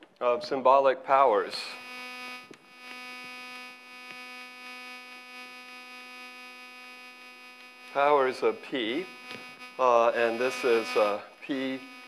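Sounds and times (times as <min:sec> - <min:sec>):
electrical buzz: 0:01.4 - 0:12.0.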